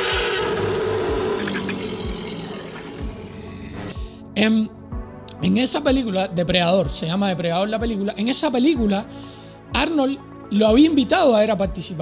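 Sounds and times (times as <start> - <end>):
creature roaring: 0.0 - 3.9
background music with low beat: 0.0 - 12.0.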